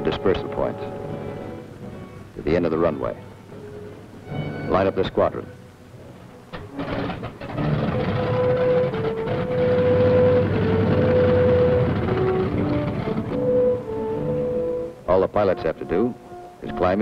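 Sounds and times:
held music notes: 0.0s - 17.0s
radial aircraft engines rumbling: 0.0s - 17.0s.

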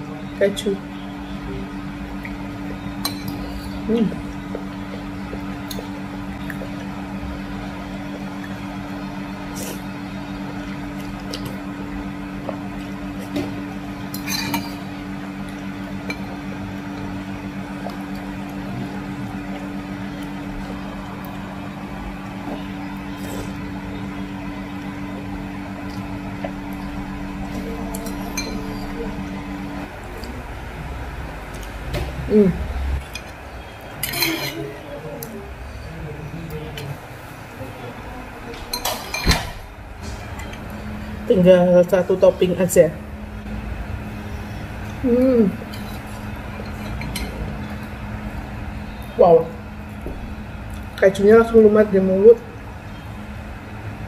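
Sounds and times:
steady low hum: 0.0s - 54.0s
cutlery clinking on ceramic bowl: 34.0s - 34.6s.

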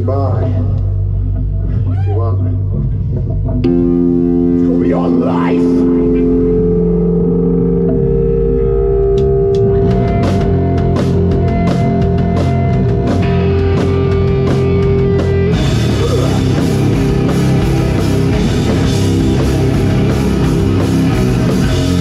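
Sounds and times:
bass guitar: 0.0s - 22.0s
distorted electric guitar: 0.0s - 22.0s
drum and cymbal hits: 9.2s - 22.0s.

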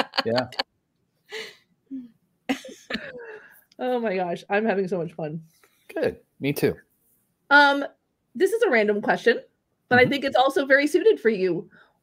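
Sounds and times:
small vocal noises: 9.9s - 10.2s.

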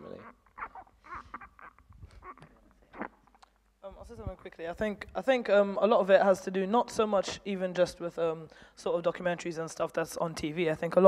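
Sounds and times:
microphone handling rustles: 1.2s - 5.2s.

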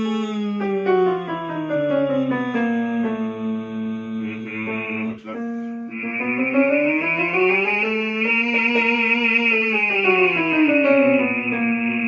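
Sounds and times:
piano accompaniment: 0.0s - 12.0s
man singing vocal scale: 2.8s - 12.0s.

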